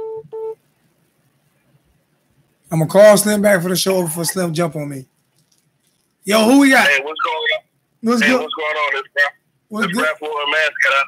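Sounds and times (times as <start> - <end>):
electronic phone beeps: 0.0 - 0.6.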